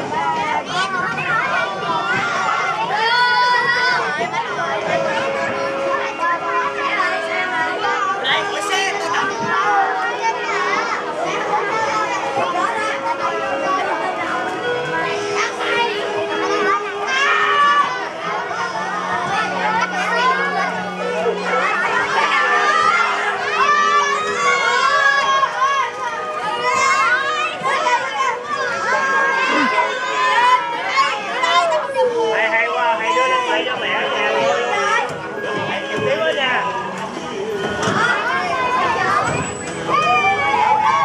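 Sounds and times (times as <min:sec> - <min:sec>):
children chattering: 0:00.0 - 0:41.0.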